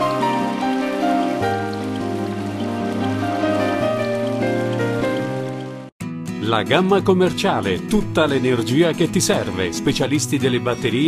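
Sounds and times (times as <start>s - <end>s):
rain-like hiss: 0.0s - 5.9s
soft music of held chords: 0.0s - 11.0s.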